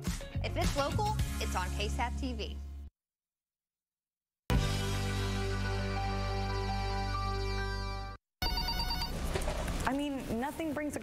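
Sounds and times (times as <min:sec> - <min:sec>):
music: 0:00.0 - 0:02.9, 0:04.5 - 0:08.2
electronic telephone ringing: 0:08.4 - 0:09.2.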